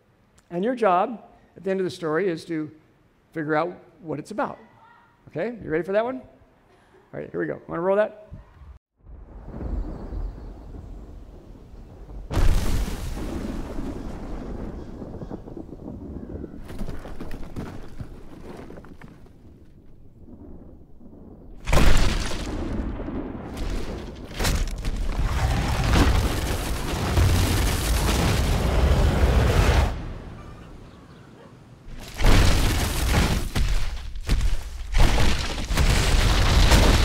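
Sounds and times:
loud boom: 0:20.3 - 0:30.5.

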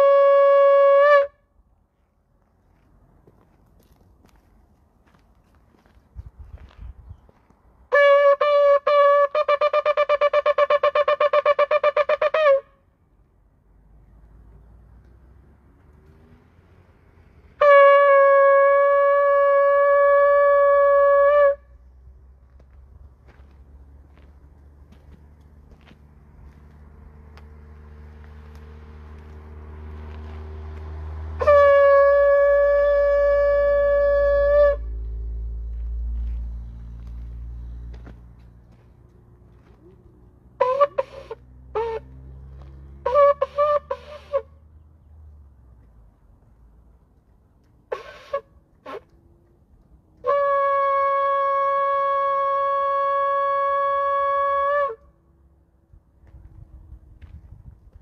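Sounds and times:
shofar blasts: 0:00.0 - 0:01.5, 0:07.9 - 0:12.8, 0:17.6 - 0:21.7, 0:31.3 - 0:35.0, 0:40.6 - 0:42.1, 0:43.0 - 0:44.6, 0:47.9 - 0:49.1, 0:50.2 - 0:55.1.

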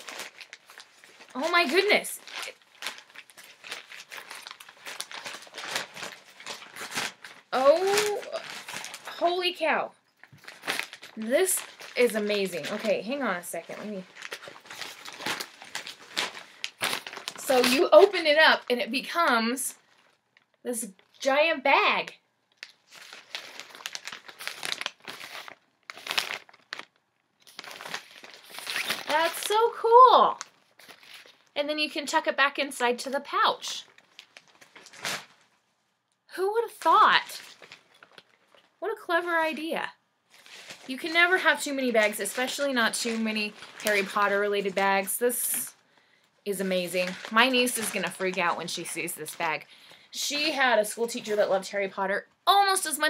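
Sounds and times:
pouch crinkling: 0:00.0 - 0:18.5, 0:19.8 - 0:21.2, 0:22.5 - 0:31.6, 0:33.8 - 0:35.6, 0:37.0 - 0:38.8, 0:40.3 - 0:45.8, 0:46.5 - 0:51.7.

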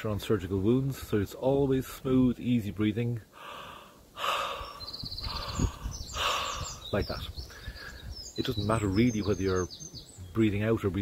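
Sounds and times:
man breathing through mouth: 0:03.3 - 0:06.8, 0:07.5 - 0:08.2.

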